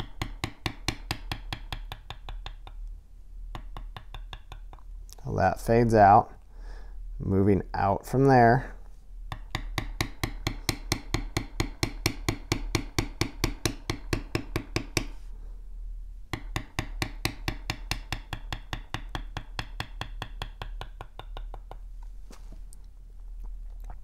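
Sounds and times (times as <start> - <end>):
mallet tapping leather tool: 0.0 - 2.8, 3.5 - 4.9, 9.3 - 15.2, 16.3 - 21.9.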